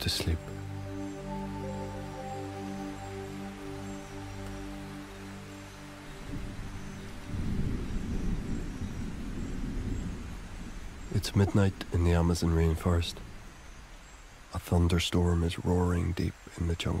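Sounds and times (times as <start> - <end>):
music pad of held chords: 0.0 - 14.2
rain: 0.0 - 17.0
low rumble of thunder: 6.2 - 13.9.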